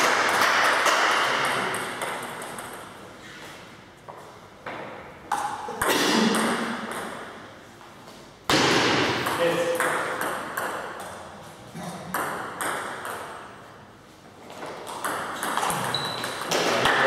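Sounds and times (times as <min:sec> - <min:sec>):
table tennis ball hits: 0:00.0 - 0:02.9, 0:04.7 - 0:07.5, 0:08.5 - 0:11.3, 0:12.0 - 0:13.6, 0:14.6 - 0:17.0
ball bouncing on table: 0:04.6 - 0:07.3, 0:12.1 - 0:13.3, 0:14.8 - 0:17.0.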